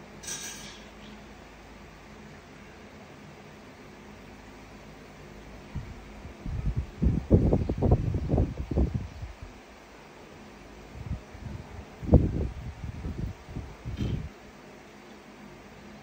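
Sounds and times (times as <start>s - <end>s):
steady low hiss: 0.0s - 16.0s.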